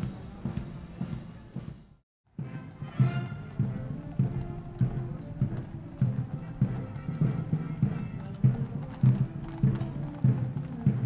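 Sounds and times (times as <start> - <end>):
military band playing a march: 0.0 - 11.0
horse hooves clip-clopping on road: 2.4 - 11.0.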